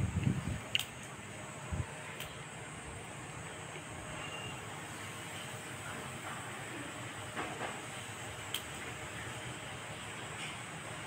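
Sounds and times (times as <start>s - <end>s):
outdoor background hiss: 0.0s - 11.0s.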